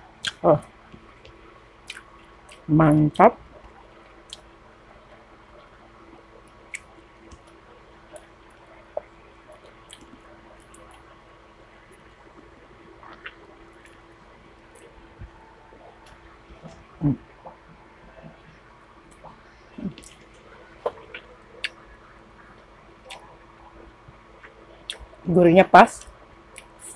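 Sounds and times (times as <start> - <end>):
faint steady hum: 0.0 - 26.9
wet chewing with smacks: 1.2 - 2.7, 3.6 - 4.5, 6.4 - 11.1, 13.0 - 21.9, 23.0 - 23.4.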